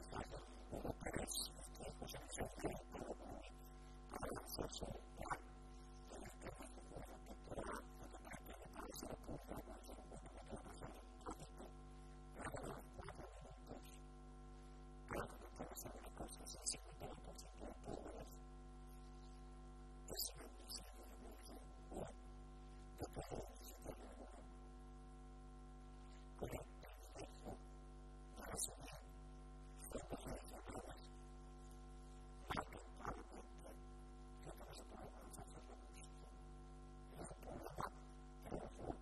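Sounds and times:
electrical mains hum: 0.0s - 39.0s.

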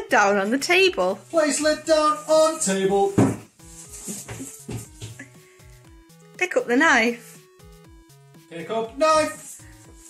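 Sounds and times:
jar lid knocking on wooden table: 3.2s - 3.5s.

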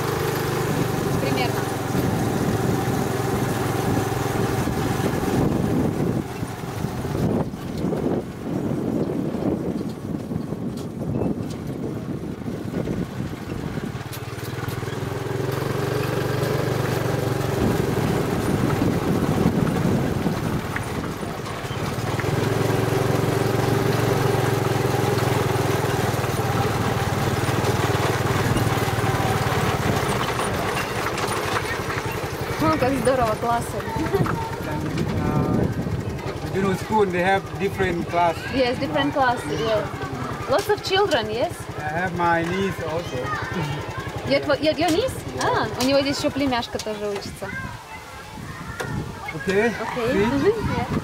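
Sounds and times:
small motorcycle engine running: 0.0s - 47.7s, 48.6s - 51.0s.

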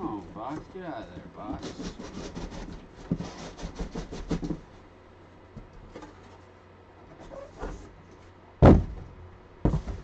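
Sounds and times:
cardboard rubbing: 0.2s - 4.7s
cardboard box knock and rustle: 8.6s - 10.0s.

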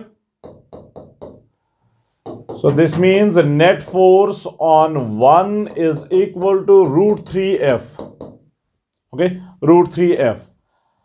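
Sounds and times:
stylus tapping on glass: 0.4s - 1.5s, 2.2s - 3.2s, 5.0s - 8.5s.

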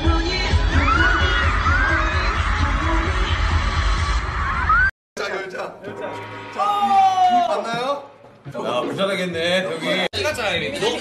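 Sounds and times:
loud music with pulsing bass: 0.0s - 4.9s
crowd screaming: 0.6s - 4.9s, 6.4s - 7.7s.

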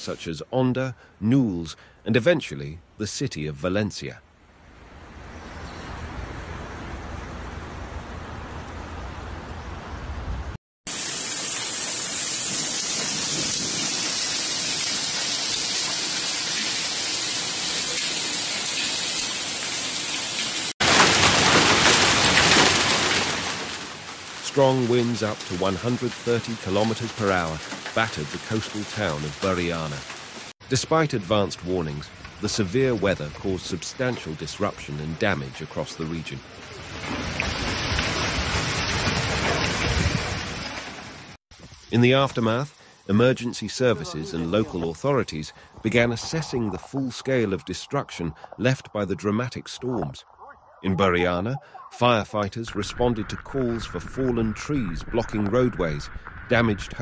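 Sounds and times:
heavy rain hissing: 10.9s - 56.8s.

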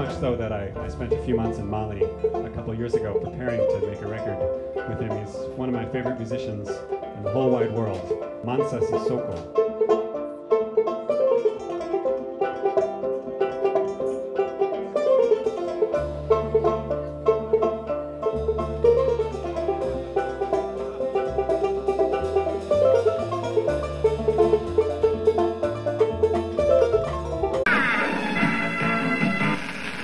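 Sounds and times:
upright bass notes: 0.0s - 9.5s, 16.0s - 29.9s
kora plucked melody: 0.0s - 30.0s.

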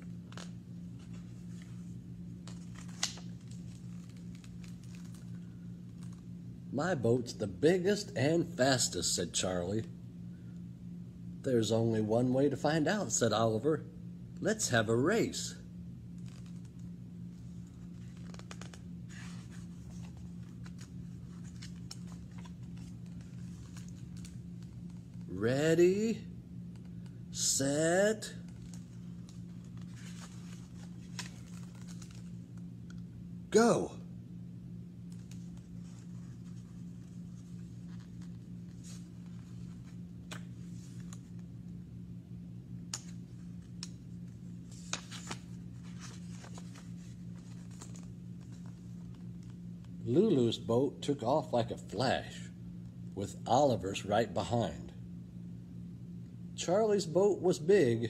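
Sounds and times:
steady low hum: 0.0s - 58.0s
book pages rustling: 0.1s - 6.2s, 16.1s - 25.3s, 28.4s - 32.7s, 35.1s - 41.6s, 43.0s - 50.0s.

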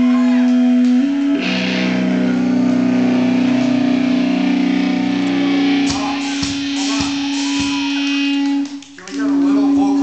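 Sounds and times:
distorted electric guitars ringing: 0.0s - 10.0s.

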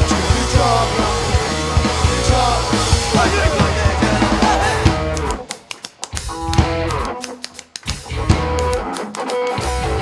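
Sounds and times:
drum and cymbal hits: 0.0s - 5.5s.

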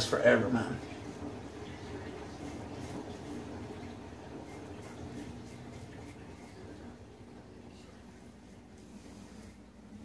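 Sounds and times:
washing machine humming: 0.0s - 10.0s.

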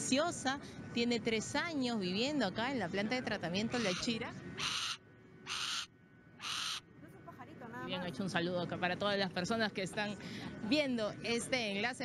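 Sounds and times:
hawk rasping calls: 3.7s - 6.8s.

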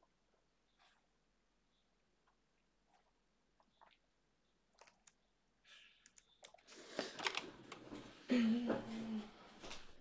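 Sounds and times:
mouse and keyboard clicks: 4.7s - 5.3s, 6.0s - 7.8s.

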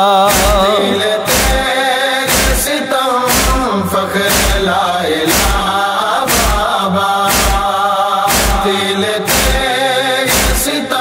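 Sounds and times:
male chorus chanting: 0.0s - 11.0s
heavy steady beat: 0.3s - 10.9s.

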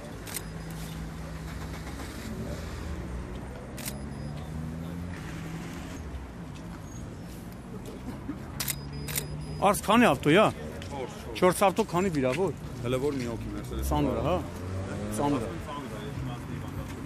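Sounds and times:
idling engines and traffic hum: 0.0s - 17.0s.

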